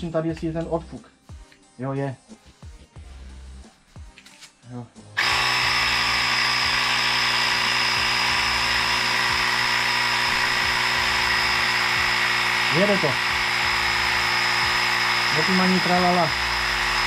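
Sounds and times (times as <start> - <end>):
air compressor hum and whine: 5.2 - 17.0.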